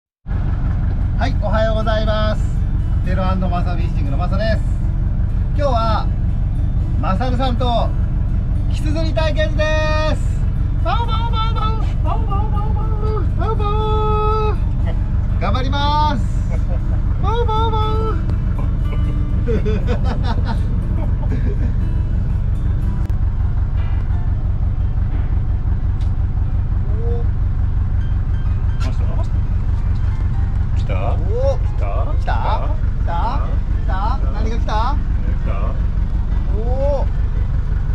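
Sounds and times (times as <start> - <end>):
boat engine humming: 0.2 - 37.9.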